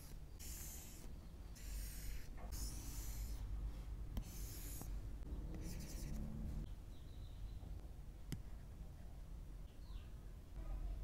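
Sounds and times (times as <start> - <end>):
stylus scratching on glass screen: 5.6 - 6.3.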